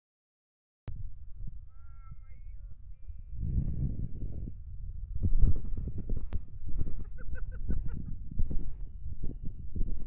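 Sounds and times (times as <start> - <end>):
wind buffeting microphone: 0.9 - 10.0.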